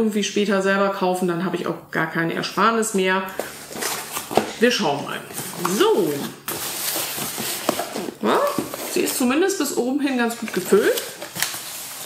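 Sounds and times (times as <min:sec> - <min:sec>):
cardboard flaps rustling: 0:03.4 - 0:09.3, 0:10.4 - 0:12.0.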